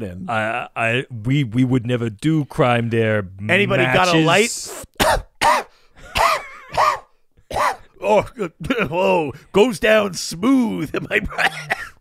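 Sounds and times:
person coughing: 5.0s - 8.0s, 11.1s - 12.0s.

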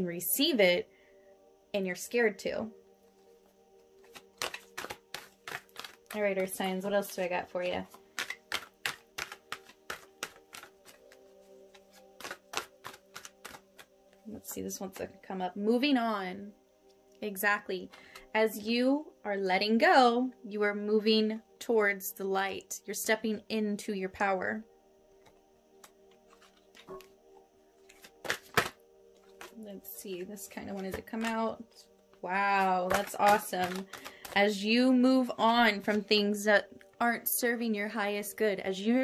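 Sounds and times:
soft background music: 0.0s - 39.0s
cards being shuffled: 4.0s - 15.1s, 25.2s - 27.1s, 27.8s - 31.8s, 32.6s - 34.6s.

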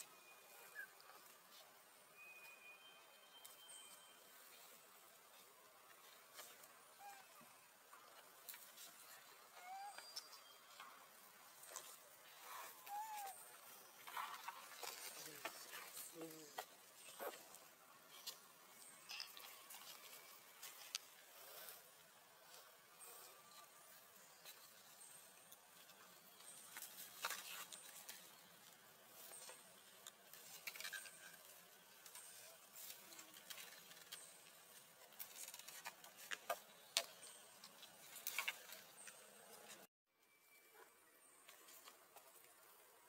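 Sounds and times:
rustling of leaves: 0.0s - 39.9s.

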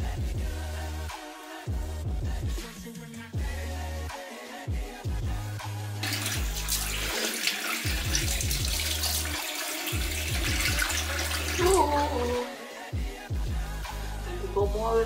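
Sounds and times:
music with deep bass beat: 0.0s - 7.2s, 7.9s - 9.4s, 10.0s - 15.0s
sink tap running water: 6.0s - 12.5s.

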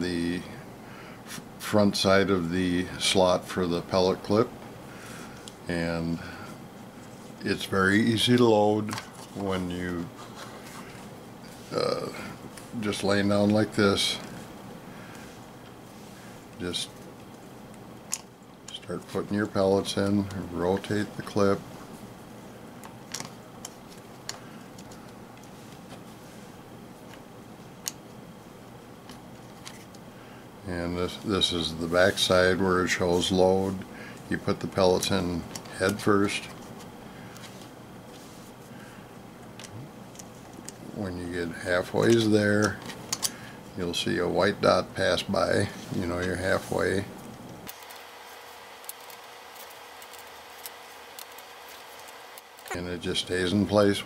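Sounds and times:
steady low hiss: 0.0s - 54.0s.

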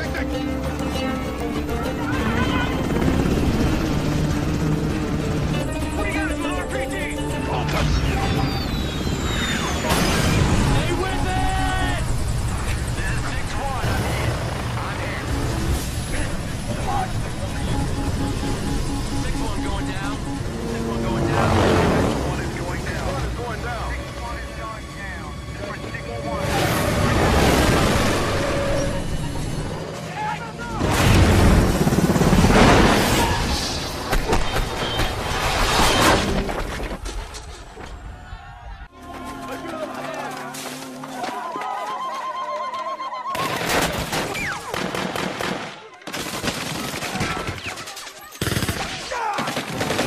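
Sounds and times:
film music score: 0.0s - 33.8s.

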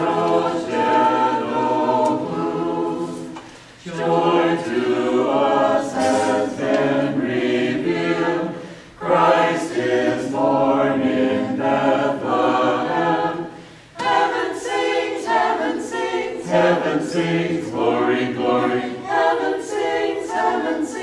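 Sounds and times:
mixed choir singing a cappella: 0.0s - 21.0s.

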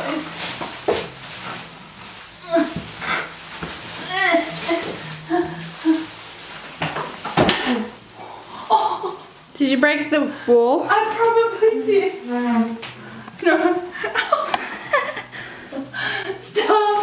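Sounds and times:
woman straining vocal sounds: 2.4s - 3.1s, 4.0s - 6.2s.

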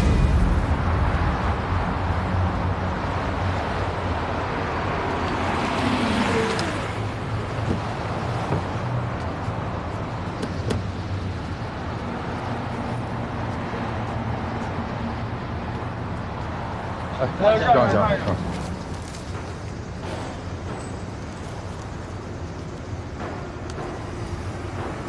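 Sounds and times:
street traffic: 0.0s - 25.0s.

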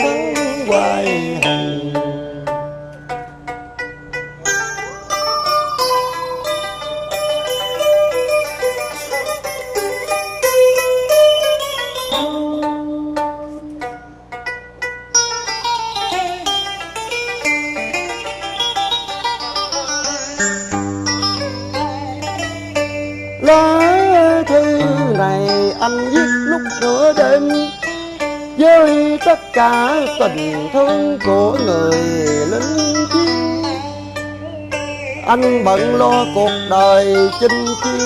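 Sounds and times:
plucked lute runs: 0.0s - 38.0s
sustained keyboard chords: 0.0s - 38.0s.

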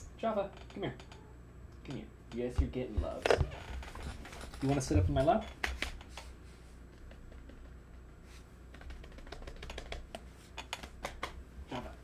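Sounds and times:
computer keyboard typing: 3.8s - 6.3s, 8.7s - 11.4s.

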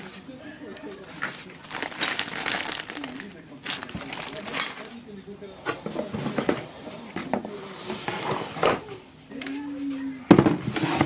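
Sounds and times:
plastic bag crinkling: 1.0s - 5.0s.

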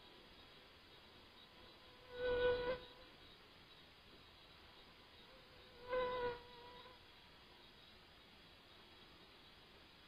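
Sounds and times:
flying insect buzzing: 1.8s - 3.0s, 5.2s - 7.0s.

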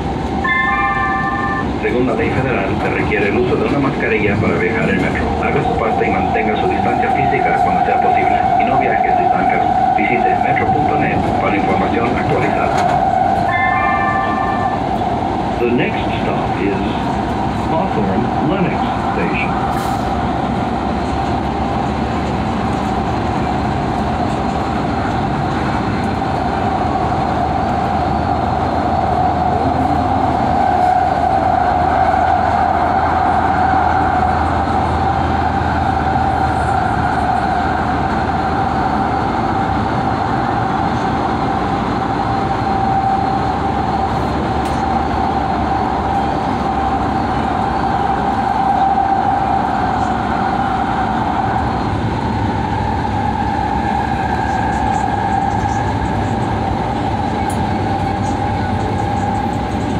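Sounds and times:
light-rail car rumbling: 0.0s - 59.9s.

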